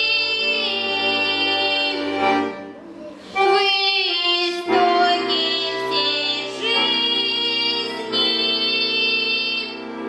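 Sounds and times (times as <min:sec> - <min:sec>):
girl singing with vibrato: 0:00.0 - 0:02.3, 0:03.4 - 0:09.8
instrumental accompaniment: 0:00.0 - 0:10.0.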